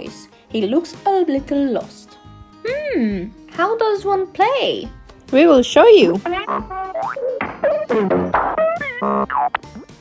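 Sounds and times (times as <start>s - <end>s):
cartoon boings and swoops: 6.3s - 9.6s.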